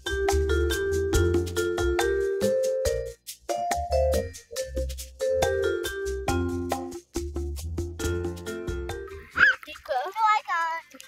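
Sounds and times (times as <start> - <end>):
mallet percussion music: 0.0 - 9.3
child squealing: 9.3 - 9.7.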